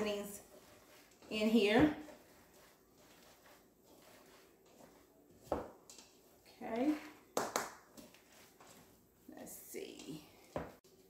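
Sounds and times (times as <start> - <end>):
hands kneading mixture in bowl: 0.0 - 11.0.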